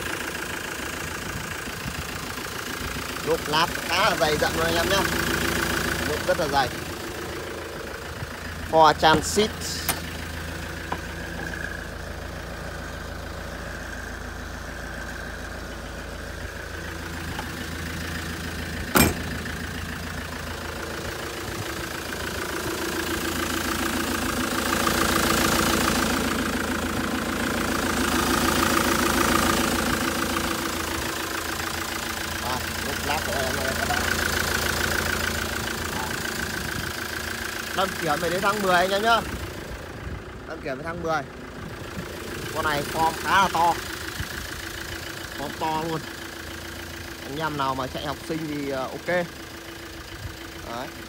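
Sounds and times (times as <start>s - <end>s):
diesel engine idling: 0.0s - 51.0s
sharp knock: 19.0s - 19.3s.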